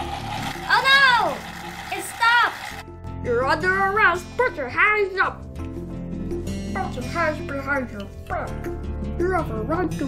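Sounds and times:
child exclaiming: 0:00.7 - 0:02.6.

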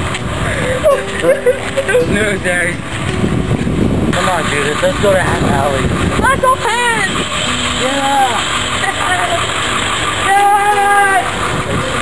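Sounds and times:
steady rushing background noise: 0:00.0 - 0:12.0.

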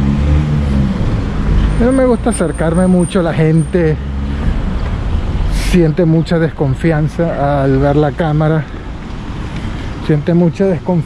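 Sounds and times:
vehicle engine hum: 0:00.0 - 0:11.0
person speaking: 0:01.6 - 0:04.3.

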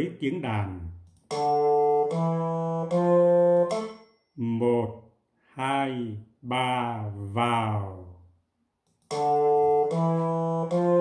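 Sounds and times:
electronic keyboard holding reedy notes: 0:01.2 - 0:04.1, 0:09.0 - 0:11.0.

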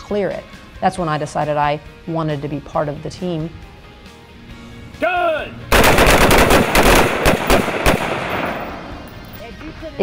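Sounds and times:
rifle shots with echo: 0:05.7 - 0:09.2.

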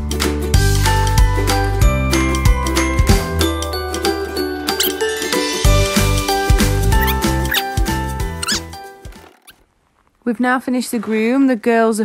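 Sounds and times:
background music: 0:00.0 - 0:09.4
squeaky rising glides: 0:04.8 - 0:05.2, 0:06.9 - 0:07.8, 0:08.4 - 0:09.6.

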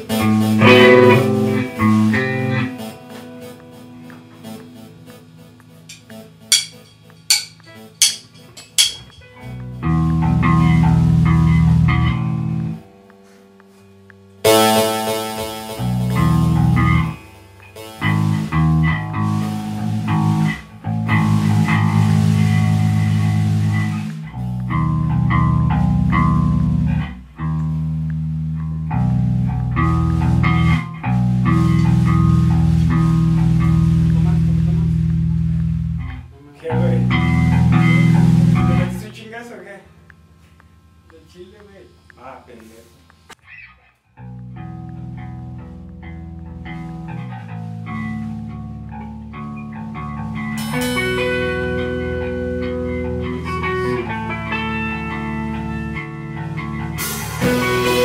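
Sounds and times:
rock band with distorted guitar: 0:00.0 - 0:39.0, 0:43.4 - 0:58.0.

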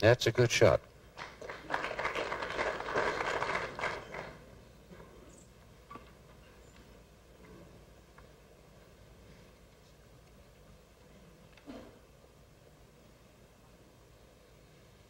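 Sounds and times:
audience applauding: 0:01.2 - 0:04.4.

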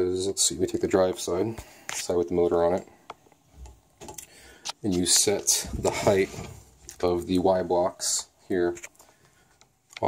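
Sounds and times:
person speaking: 0:04.2 - 0:09.0.

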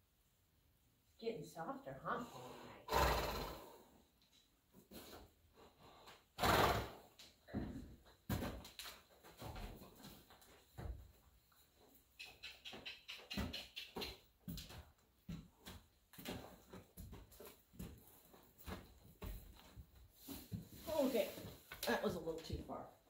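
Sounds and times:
horse hooves thudding: 0:07.4 - 0:20.8.

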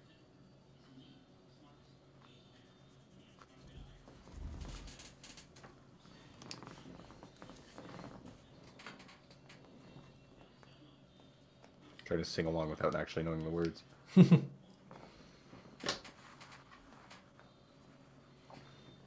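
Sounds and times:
clicks and rustles of handling: 0:04.1 - 0:10.1, 0:15.7 - 0:17.4.

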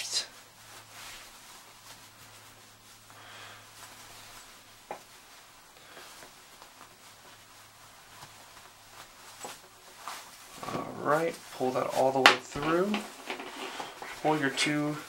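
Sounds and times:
jacket fabric rustling: 0:00.0 - 0:15.0
low steady hum: 0:00.0 - 0:15.0
power cord being handled: 0:12.3 - 0:14.2.

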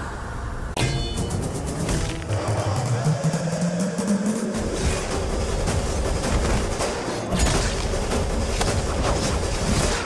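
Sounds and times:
dramatic film score with drone: 0:00.0 - 0:10.0.

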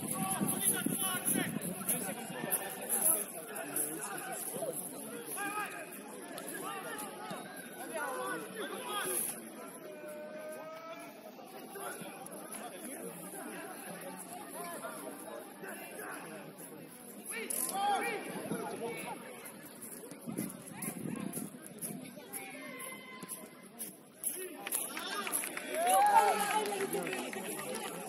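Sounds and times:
players shouting and chatter: 0:00.0 - 0:28.0.

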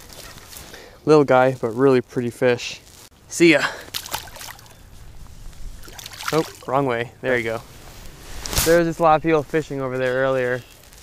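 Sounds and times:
fish splashing in water: 0:03.9 - 0:04.8, 0:05.8 - 0:06.7.

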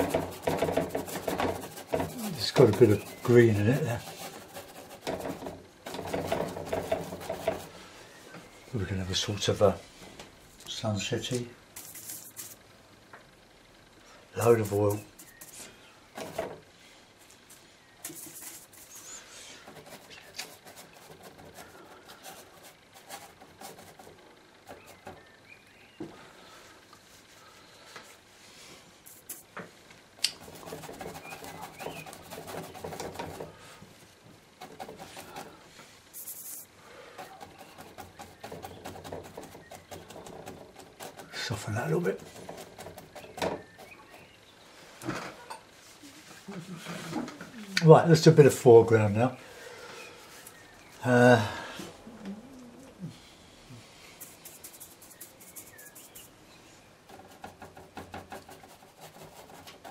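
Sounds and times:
brush painting on board: 0:00.0 - 0:07.9, 0:11.8 - 0:12.6, 0:14.4 - 0:16.6, 0:17.2 - 0:25.2, 0:29.0 - 0:29.5, 0:30.4 - 0:33.6, 0:34.6 - 0:44.4, 0:54.0 - 0:56.4, 0:57.0 - 0:59.9
voice murmuring: 0:02.1 - 0:02.5, 0:51.0 - 0:53.2
short taps and scrapes: 0:04.1 - 0:07.7.

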